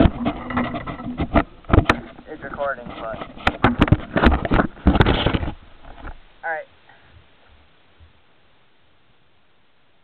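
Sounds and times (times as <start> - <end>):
camera knocks and bumps: 0.0 - 6.2.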